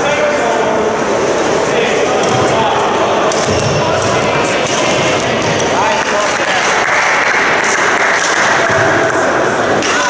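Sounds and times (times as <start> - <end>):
racket hitting shuttlecock: 3.2 - 6.4.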